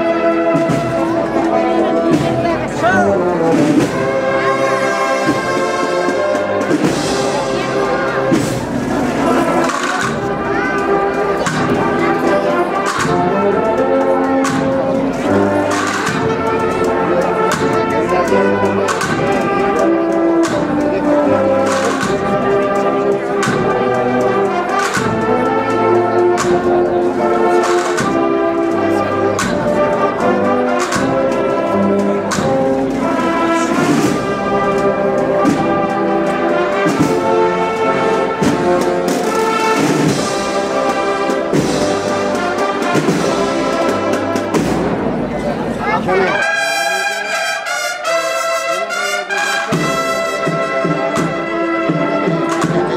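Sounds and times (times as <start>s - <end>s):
steady drum beat: 0.0s - 47.2s, 47.8s - 52.9s
brass chords: 0.0s - 52.9s.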